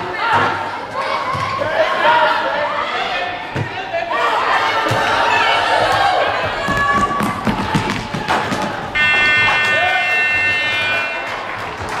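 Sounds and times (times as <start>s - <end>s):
scoreboard buzzer: 9.0s - 11.9s.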